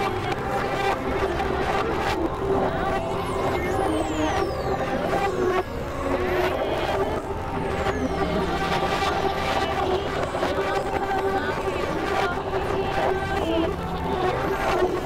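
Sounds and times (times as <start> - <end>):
synthesizer drone: 0.0 - 15.0.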